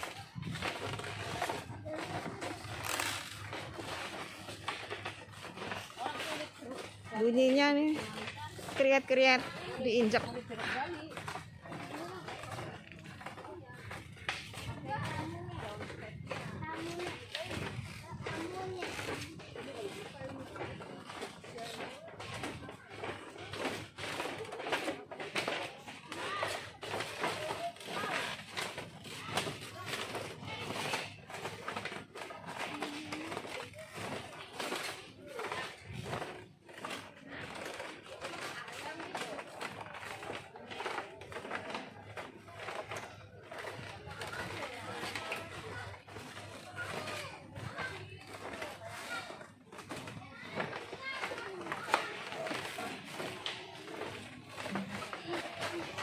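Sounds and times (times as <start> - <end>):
footsteps on creaking bamboo slats: 0.0 - 56.0
people talking: 0.0 - 56.0.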